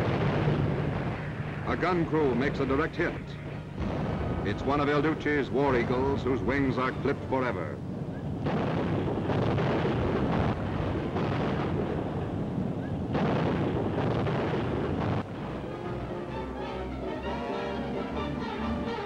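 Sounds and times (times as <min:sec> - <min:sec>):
gunfire and explosions: 0:00.0 - 0:16.2
orchestral music: 0:15.4 - 0:19.0.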